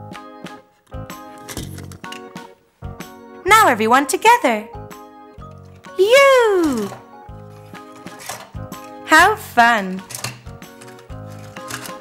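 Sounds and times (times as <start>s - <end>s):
light background music: 0.0s - 12.0s
plastic toys clicking: 10.0s - 12.0s.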